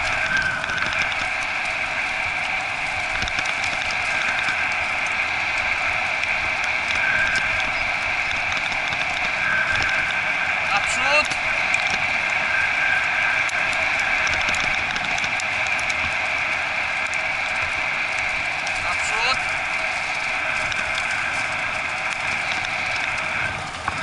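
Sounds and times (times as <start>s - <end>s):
cart wheels rolling on dirt: 0.0s - 24.0s.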